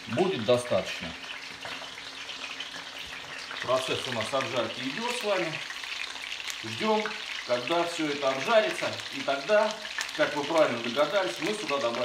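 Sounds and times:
chicken sizzling in a frying pan: 0.0 - 12.0.

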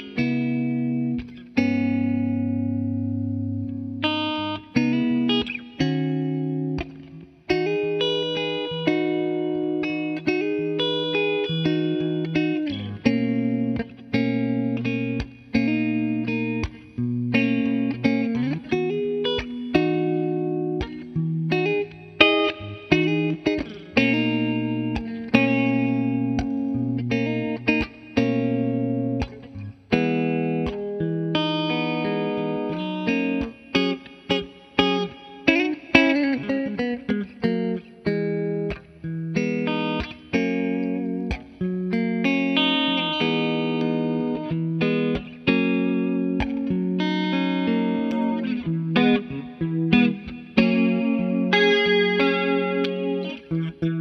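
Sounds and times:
electric guitar playing: 0.0 - 54.0.

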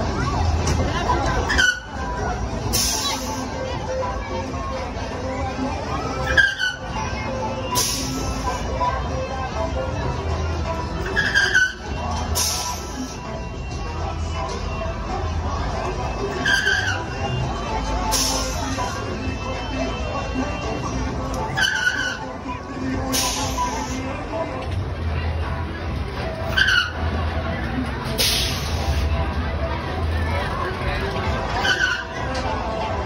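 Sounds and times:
funfair music playing: 0.0 - 33.0
ride rumbling: 0.0 - 33.0
short high squeal: 1.5 - 1.9, 6.2 - 7.0, 11.0 - 13.2, 16.3 - 17.2, 21.5 - 22.3.

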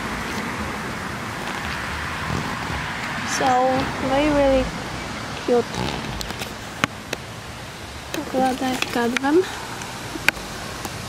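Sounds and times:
mulch crackling under sandals: 0.0 - 4.4, 5.3 - 7.2, 8.2 - 10.9
steady hiss: 0.0 - 11.0.

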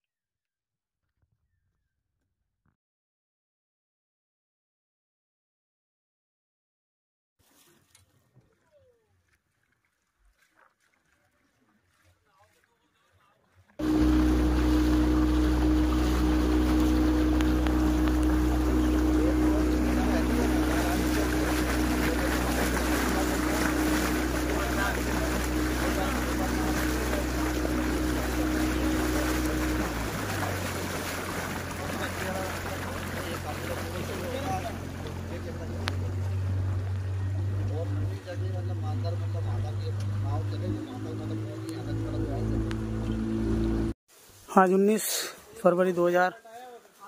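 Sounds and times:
water rushing along hull: 7.4 - 44.3
motorboat engine running: 13.7 - 44.0.

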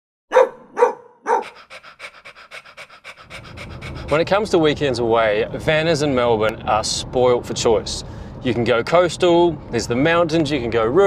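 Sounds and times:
dog barking: 0.3 - 4.0
low road rumble: 0.3 - 11.0
dog panting: 0.8 - 4.9.

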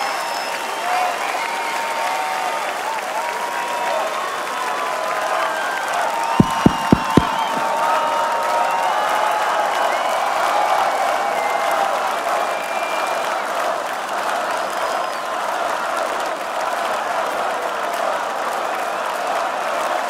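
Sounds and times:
crowd cheering and applauding: 0.0 - 15.2
low thump: 6.4 - 7.8.

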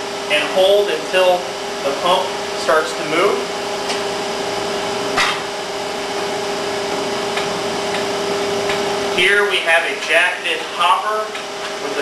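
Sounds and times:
filling machine pump humming: 0.0 - 12.0.

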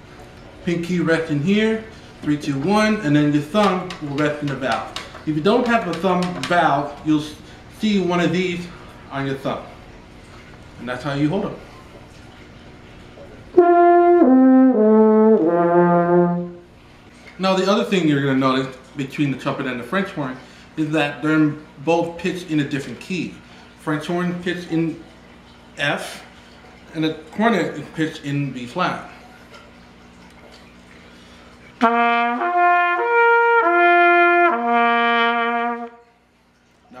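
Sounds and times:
french horn notes: 13.6 - 16.6, 31.8 - 36.1.

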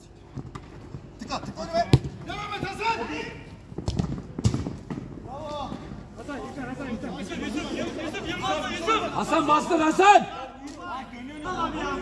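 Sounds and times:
players shouting: 1.6 - 3.5, 7.1 - 12.0.

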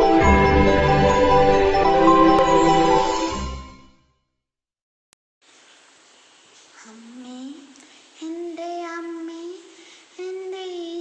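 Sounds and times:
boy singing unaccompanied: 8.2 - 11.0.

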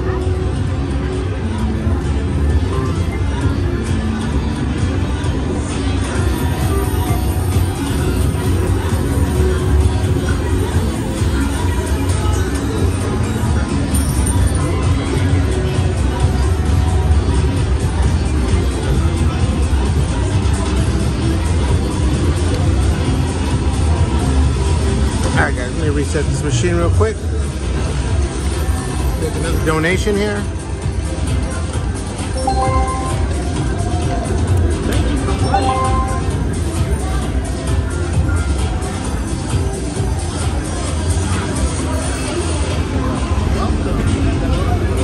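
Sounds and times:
other slot machines: 0.0 - 45.0
slot machine game music: 32.3 - 33.7, 35.3 - 36.8
slot machine reel-spin sounds: 32.4 - 33.6, 35.4 - 36.6.

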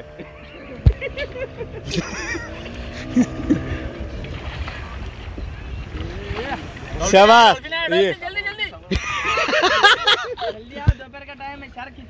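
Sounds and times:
wind rumbling on microphone: 0.0 - 9.0.

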